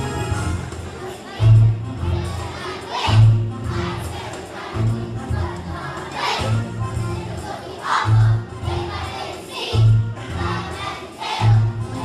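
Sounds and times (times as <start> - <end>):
children singing and shouting: 0.6 - 12.0
music with bass pulse: 8.1 - 9.0.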